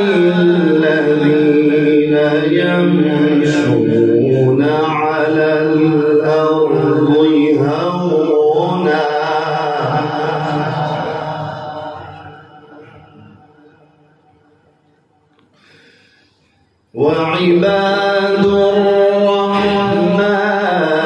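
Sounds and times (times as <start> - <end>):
man reciting melodically: 0.0 - 13.4, 16.9 - 21.0.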